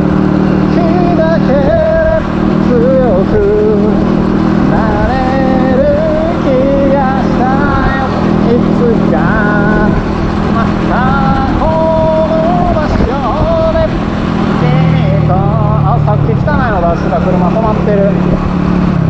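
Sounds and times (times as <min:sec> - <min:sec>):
motorcycle engine running: 0:00.0 - 0:19.0
wind and road noise: 0:00.0 - 0:19.0.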